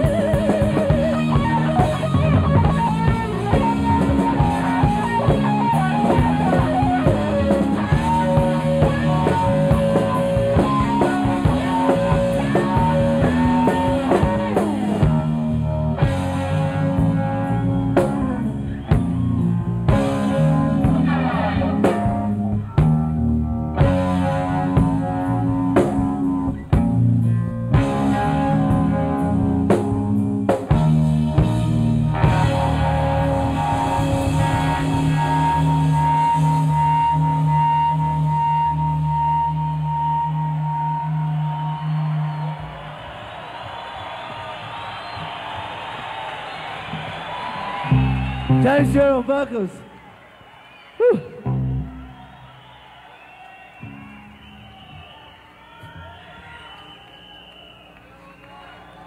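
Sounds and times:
live rock band playing: 0.0 - 49.9, 51.0 - 52.9, 53.7 - 55.2.

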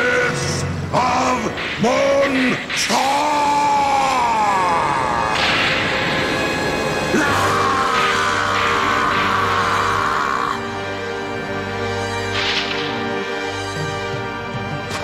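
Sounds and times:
steady low drone: 0.0 - 15.0
synthesized cartoon music: 9.8 - 15.0.

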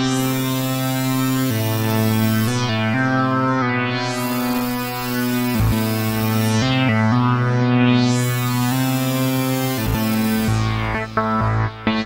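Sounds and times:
distorted synthesizer held notes: 0.0 - 12.0.

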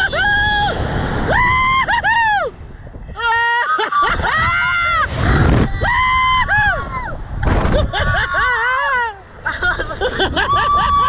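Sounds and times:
people screaming and whooping: 0.0 - 11.0
wind rushing over microphone: 0.0 - 11.0.

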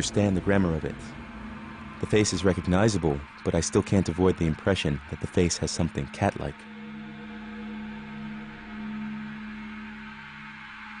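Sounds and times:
low electronic drone: 0.0 - 11.0.

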